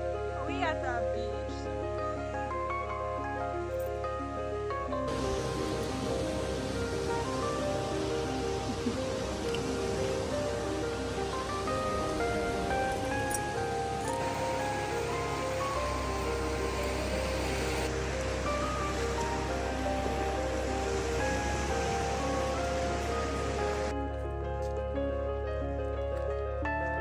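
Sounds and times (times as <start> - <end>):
background music with held notes: 0.0 - 27.0
steady hiss: 1.8 - 23.9.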